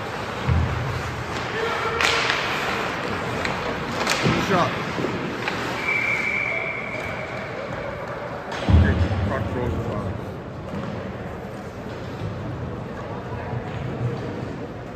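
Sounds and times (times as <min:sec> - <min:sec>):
referee's whistle long blast: 0:05.8 - 0:07.2.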